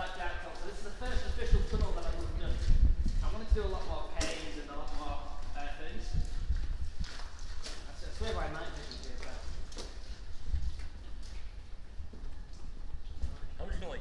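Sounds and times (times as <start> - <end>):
footsteps crunching on gravel: 0.0 - 13.6.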